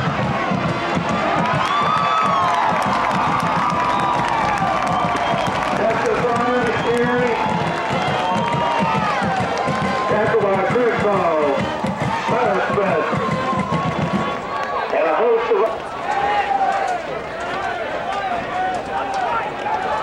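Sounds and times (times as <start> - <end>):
crowd of spectators talking: 0.0 - 20.0.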